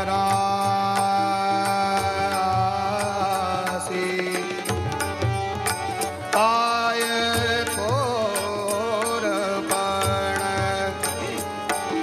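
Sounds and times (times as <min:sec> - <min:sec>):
instrumental accompaniment: 0:00.0 - 0:12.0
man singing devotional song: 0:00.0 - 0:12.0
percussion strokes: 0:00.0 - 0:12.0.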